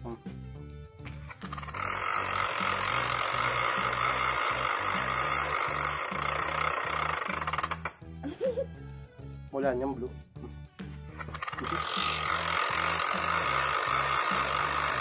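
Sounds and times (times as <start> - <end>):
background music with bass line: 0.0 - 15.0
spinner wheel clicking: 1.1 - 7.9, 11.3 - 15.0.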